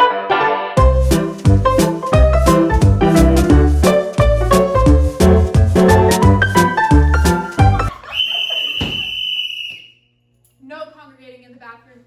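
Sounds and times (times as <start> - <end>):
whistle blast: 8.0 - 10.1.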